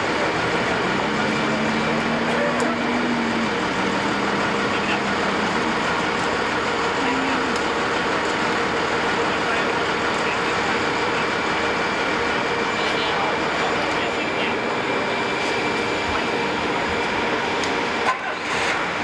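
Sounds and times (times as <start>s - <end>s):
loud machinery engine drone: 0.0s - 19.0s
faint talk: 1.8s - 3.6s, 6.8s - 7.8s, 12.6s - 15.2s.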